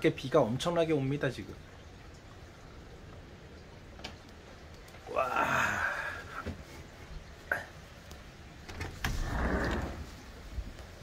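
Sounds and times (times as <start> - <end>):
heavy rain: 0.0 - 11.0.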